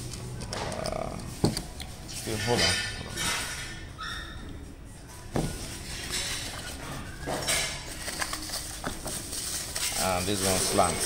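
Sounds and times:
plastic wrap rustling: 5.4s - 11.0s.

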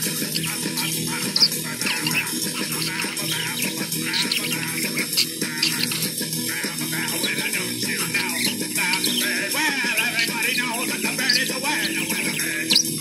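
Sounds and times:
music playing: 0.0s - 13.0s
parakeet chirping: 0.0s - 13.0s.

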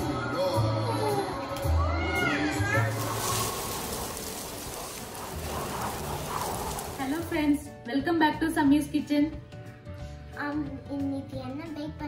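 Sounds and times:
steady rain-like hiss: 2.8s - 7.5s.

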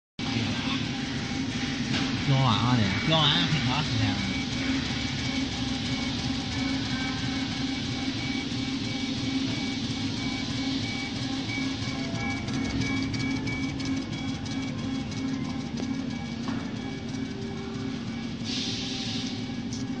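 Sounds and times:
laser cutter humming and whining: 0.2s - 20.0s.

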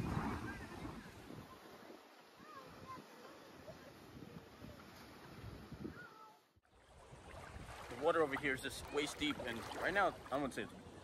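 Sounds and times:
small waves washing on beach: 0.0s - 5.8s, 6.6s - 11.0s
water moving around microphone: 0.0s - 11.0s
wind on microphone: 0.0s - 11.0s.

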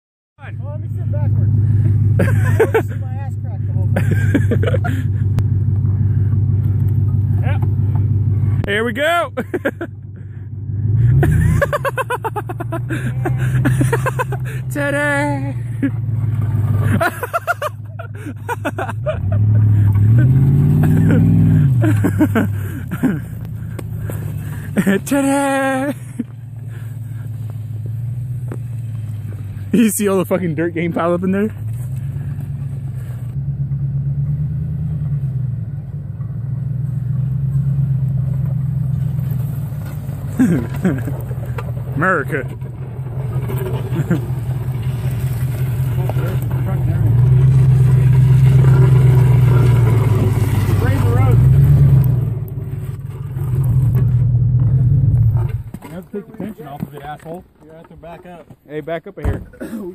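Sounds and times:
distant suv engine rumble: 0.4s - 59.9s.

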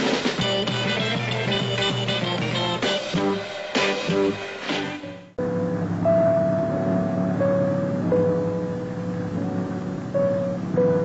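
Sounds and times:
slow tune of held notes: 5.0s - 11.0s.

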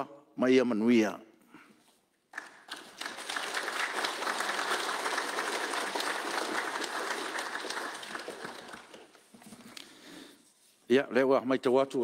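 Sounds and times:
crowd applauding: 2.3s - 9.3s.

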